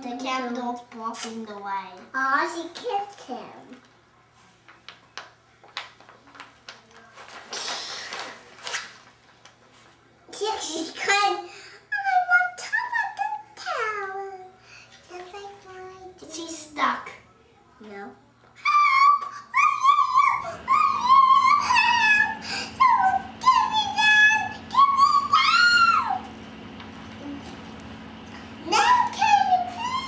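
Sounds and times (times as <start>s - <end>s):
faint low hum: 0.0s - 30.0s
child's sing-song voice: 10.3s - 17.2s, 17.8s - 26.3s, 28.6s - 30.0s.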